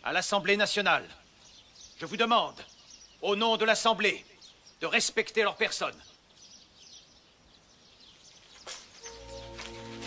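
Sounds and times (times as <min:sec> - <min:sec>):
faint bird chirps: 0:00.8 - 0:10.0.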